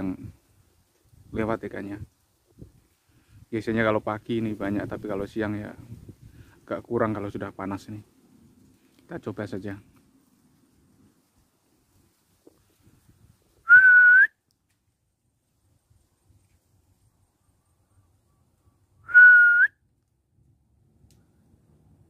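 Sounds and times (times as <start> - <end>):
breath hiss: 2.8 - 3.5, 6.1 - 6.6
person whistling: 13.7 - 14.4, 19.0 - 19.8.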